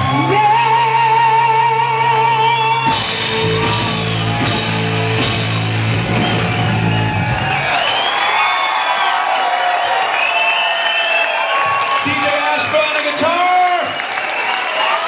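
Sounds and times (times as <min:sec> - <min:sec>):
audience cheering and whooping: 0:00.0 - 0:15.0
rock band holding final chord: 0:02.9 - 0:07.3.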